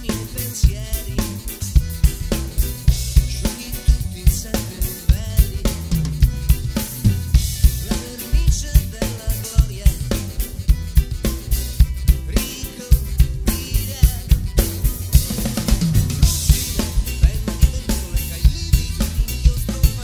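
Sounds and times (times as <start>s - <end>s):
drum kit groove: 0.0s - 20.0s
recorded song playing: 0.0s - 20.0s.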